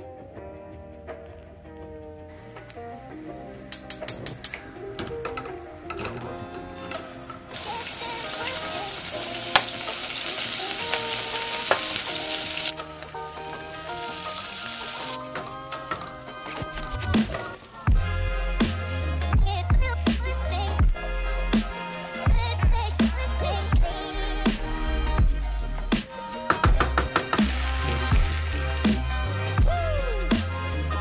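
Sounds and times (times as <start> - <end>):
background music: 0.0 - 31.0
onions sizzling in hot oil: 7.6 - 15.2, 27.4 - 28.8
heavy bass beat: 17.9 - 31.0.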